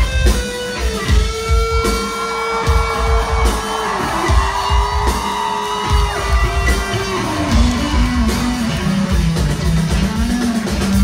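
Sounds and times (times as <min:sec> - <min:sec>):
rock band playing: 0:00.0 - 0:11.0
bass drum beats: 0:02.6 - 0:11.0.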